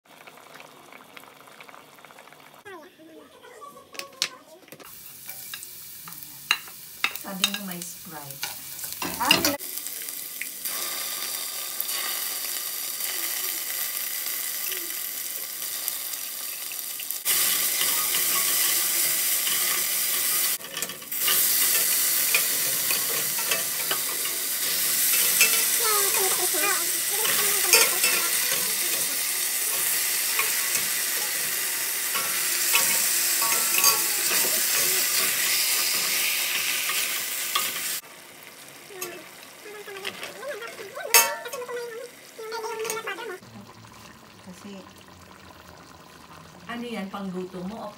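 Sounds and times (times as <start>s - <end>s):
food sizzling in hot oil: 0.1s - 2.9s, 4.8s - 47.9s.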